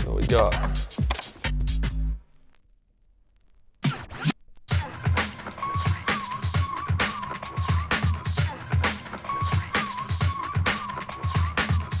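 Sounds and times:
track with punchy beat: 0:00.0 - 0:02.2, 0:03.8 - 0:12.0
record scratching by hand: 0:00.0 - 0:02.6, 0:03.3 - 0:12.0
music from vinyl record: 0:00.0 - 0:02.7, 0:03.3 - 0:12.0.

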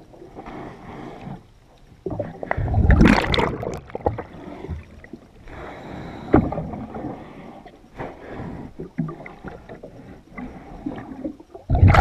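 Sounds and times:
underwater knocks and scrapes: 0:02.0 - 0:05.2
regulator bubbles rushing: 0:02.1 - 0:04.2.

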